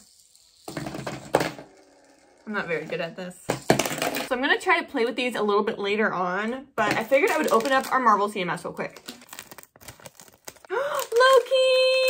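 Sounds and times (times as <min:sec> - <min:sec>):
plastic bag crinkling and tearing: 0:07.1 - 0:12.0.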